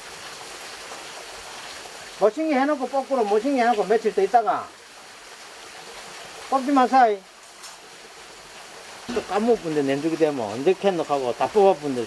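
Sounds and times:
running water rushing: 0.0 - 12.0.

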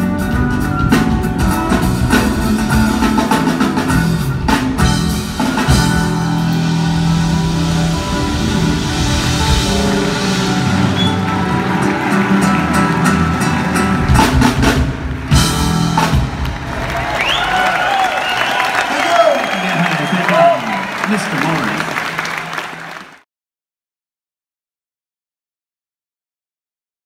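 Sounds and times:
drum hits: 0.0 - 17.1
smooth jazz band playing: 0.0 - 18.1
audience applause and cheering: 0.0 - 23.3.

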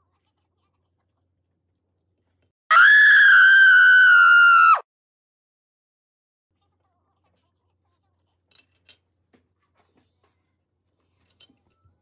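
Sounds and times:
child screaming: 2.7 - 4.9.

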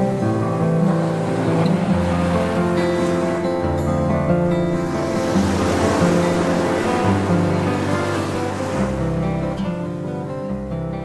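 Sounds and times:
background music with low notes: 0.0 - 11.0
surf washing up a beach: 0.0 - 11.0.

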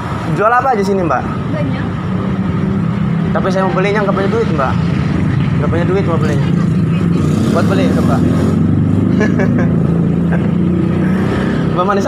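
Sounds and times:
street traffic engines droning: 0.0 - 12.0.

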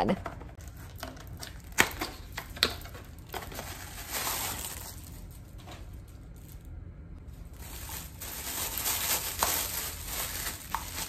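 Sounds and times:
packaging crinkling: 0.6 - 6.7, 7.3 - 11.0.

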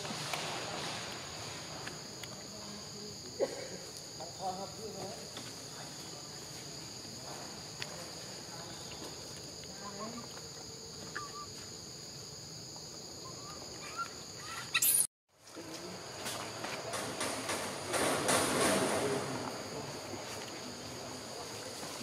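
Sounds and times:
high insect chorus: 0.0 - 22.0.

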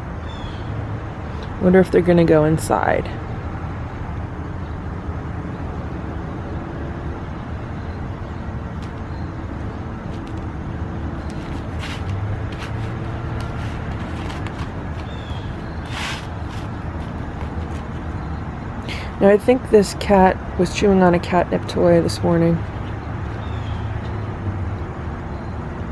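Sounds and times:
distant traffic rumble: 0.0 - 25.9
short noises: 11.2 - 17.9.

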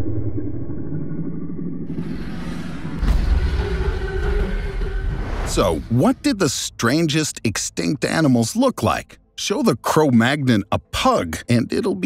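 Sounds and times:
low rumble: 0.0 - 6.4.

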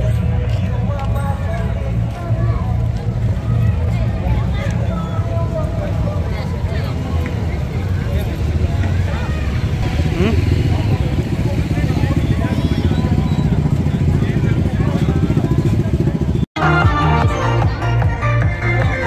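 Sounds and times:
motorcycle and car engines running: 0.0 - 16.5
crowd chattering: 0.0 - 19.0.

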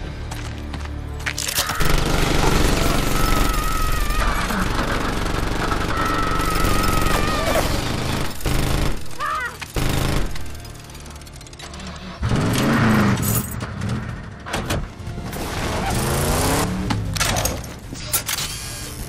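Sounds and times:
film score music: 0.0 - 19.0
rapid automatic gunfire: 1.8 - 11.0.

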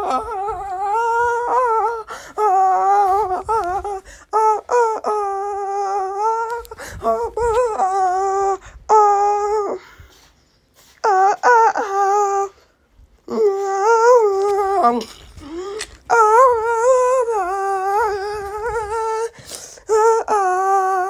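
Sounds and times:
wordless high-pitched singing: 0.0 - 10.0, 11.0 - 12.6, 13.3 - 21.0.

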